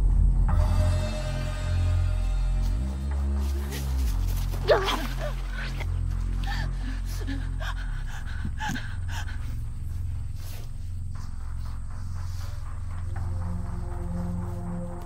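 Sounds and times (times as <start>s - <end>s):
low droning horror music: 0.0s - 15.0s
breathy vocal sounds: 3.4s - 13.1s.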